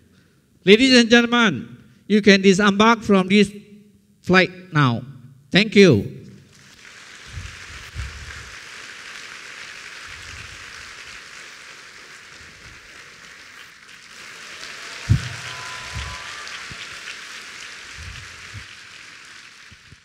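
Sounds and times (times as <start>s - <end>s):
audience applauding: 6.5s - 20.0s.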